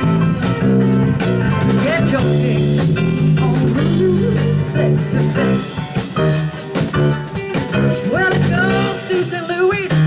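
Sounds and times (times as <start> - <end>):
drum strokes: 0.0 - 10.0
jazz band playing blues: 0.0 - 10.0
person singing: 1.7 - 5.8, 8.0 - 10.0.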